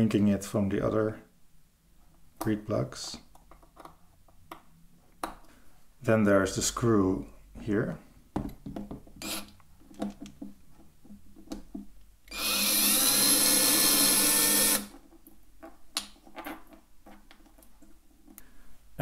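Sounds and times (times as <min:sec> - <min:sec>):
cordless drill running: 0:09.2 - 0:09.5, 0:12.3 - 0:14.9.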